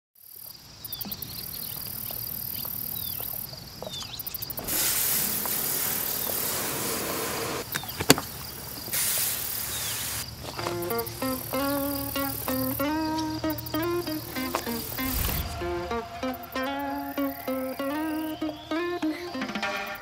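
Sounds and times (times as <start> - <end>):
crickets trilling: 0.2 - 19.7
pressure washer spraying water: 4.6 - 7.6, 8.9 - 10.2
short falling chirps: 10.9 - 18.8.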